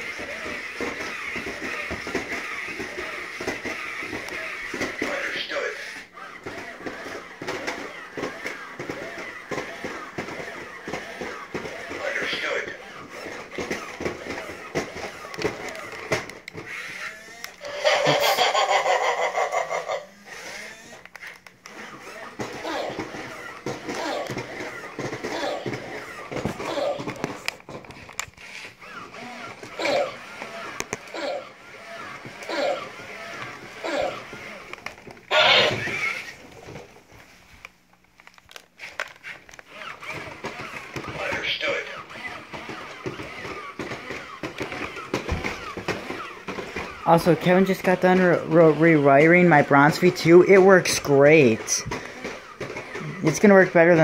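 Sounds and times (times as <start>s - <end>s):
toy robot geared motors: 0.0s - 36.8s, 38.2s - 54.0s.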